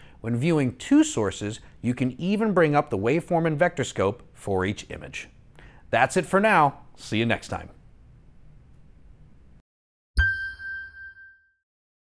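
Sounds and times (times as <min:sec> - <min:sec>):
bell-like chime: 0:10.2 - 0:11.6.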